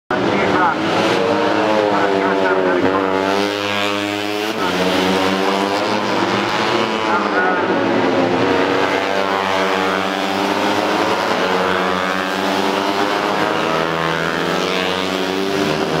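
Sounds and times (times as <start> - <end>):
racing motorcycle engines: 0.1 - 16.0.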